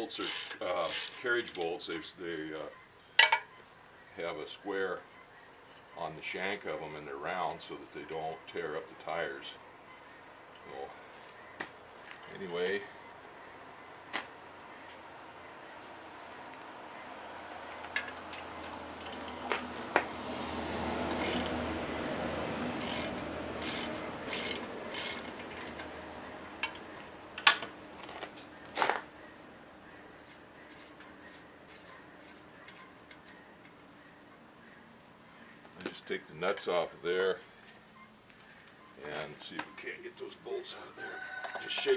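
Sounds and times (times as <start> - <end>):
metallic clicks and clanks: 17.9 - 19.5, 22.8 - 25.9, 26.6 - 27.8.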